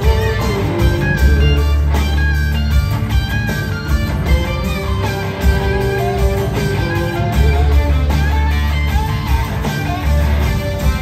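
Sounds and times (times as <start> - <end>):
electric guitar lead with bent notes: 0.0 - 11.0
live rock band: 0.0 - 11.0.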